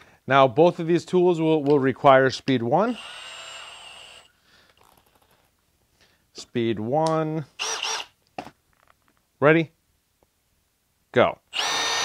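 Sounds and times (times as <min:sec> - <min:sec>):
drill motor whining: 0:02.9 - 0:04.3, 0:07.6 - 0:08.1, 0:11.6 - 0:12.0.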